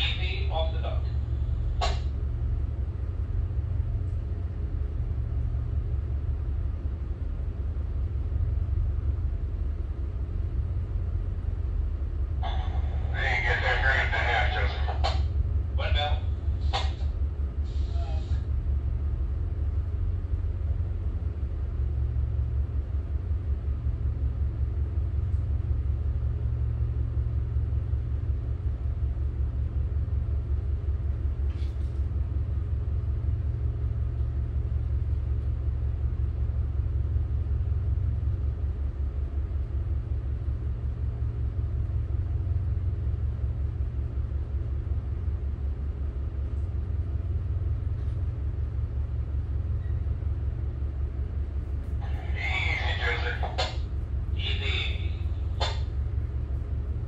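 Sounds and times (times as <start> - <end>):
diesel engines rumbling: 0.0 - 57.0.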